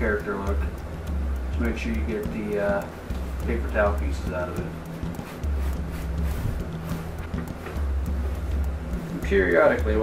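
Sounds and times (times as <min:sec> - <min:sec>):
background music with bass line: 0:00.0 - 0:10.0
paper towel wiping plastic: 0:04.8 - 0:09.6.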